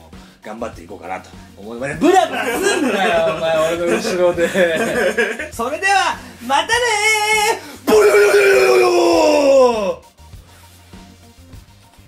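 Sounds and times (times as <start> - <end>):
man's long falling comic cry: 7.9 - 10.0.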